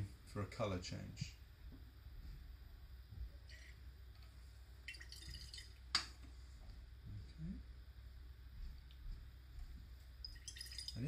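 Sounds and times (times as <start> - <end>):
soft liquid splashing in flask: 4.8 - 6.1, 10.2 - 11.0.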